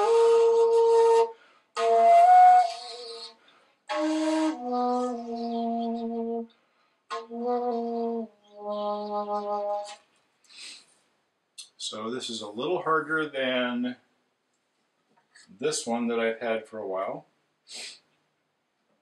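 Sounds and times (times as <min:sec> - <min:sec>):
breathy flute phrases: 0:00.0 - 0:10.9.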